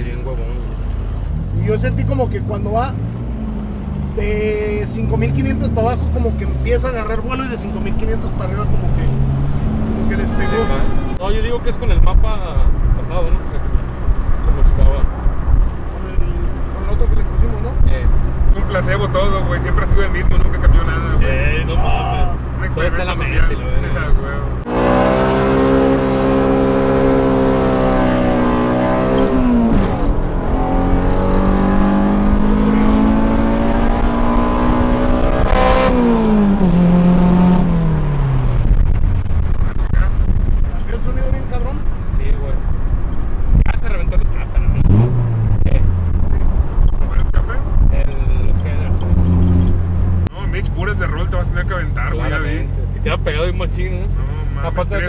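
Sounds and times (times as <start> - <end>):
car engine revving at full throttle: 0.0 - 55.0
exhaust crack: 1.2 - 52.1.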